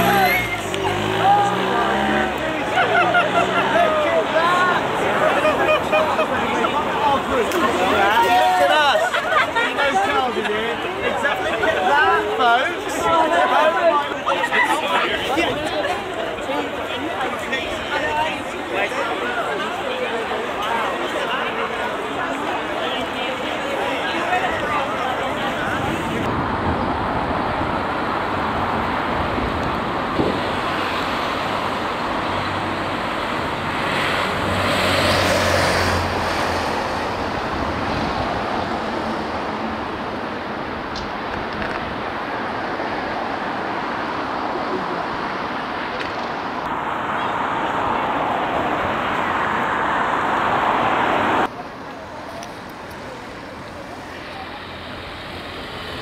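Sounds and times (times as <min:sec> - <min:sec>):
onlookers chattering: 0:00.0 - 0:56.0
road traffic passing: 0:00.0 - 0:56.0
motor vehicle engine passing close: 0:32.3 - 0:38.1.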